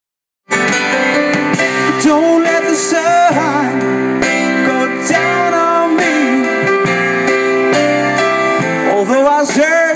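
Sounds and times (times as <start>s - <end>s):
drum kit beat: 0.5s - 9.9s
electric bass: 0.5s - 9.9s
stage piano: 0.5s - 9.9s
man singing: 1.7s - 7.0s, 8.5s - 9.9s.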